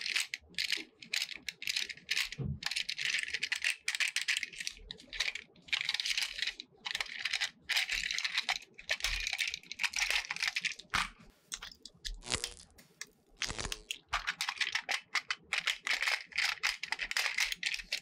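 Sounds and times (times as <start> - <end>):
plastic toy parts clicking and rattling: 0.0 - 18.0.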